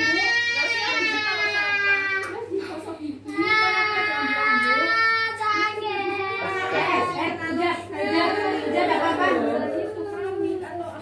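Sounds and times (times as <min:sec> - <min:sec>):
faint adult voices: 0:00.0 - 0:11.0.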